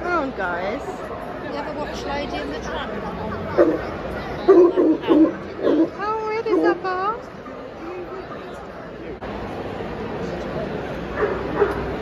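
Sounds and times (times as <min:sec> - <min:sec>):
chatter of busy hall: 0:00.0 - 0:12.0.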